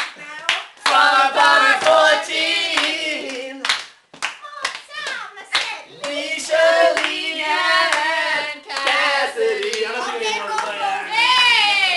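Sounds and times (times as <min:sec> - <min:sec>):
people singing unaccompanied: 0:00.8 - 0:03.8, 0:05.9 - 0:11.9
sharp hand claps: 0:02.8 - 0:06.2.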